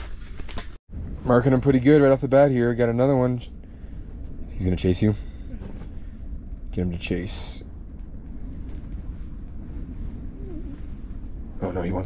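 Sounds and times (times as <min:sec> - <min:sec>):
wind buffeting microphone: 0:00.9 - 0:12.0.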